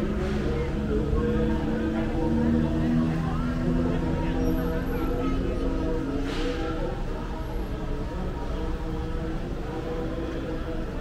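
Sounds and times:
faint distant music: 0.0 - 11.0.

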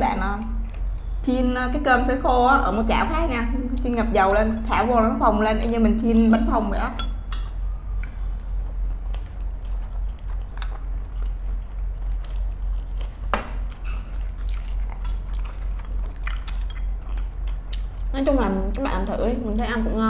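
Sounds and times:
steady low hum: 0.0 - 20.0
close chewing of food: 9.0 - 19.7.

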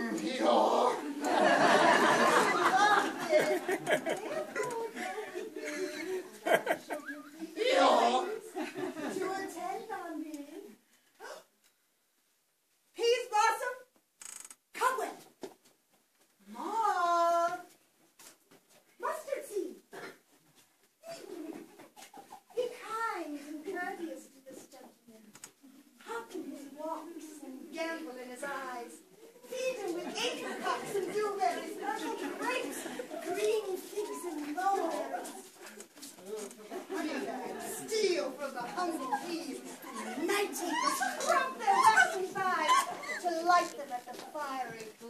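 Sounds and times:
people's voices in a room: 0.0 - 45.0.

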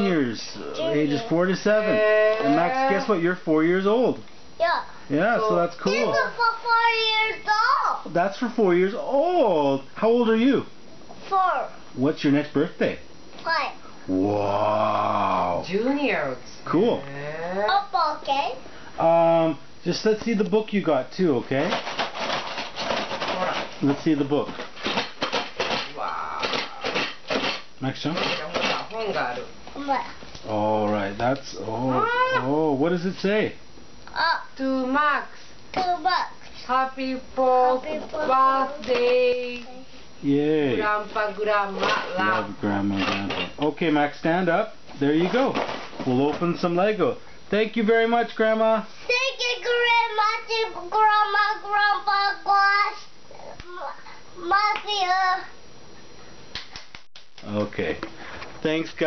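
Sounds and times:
child singing: 49.1 - 55.5.

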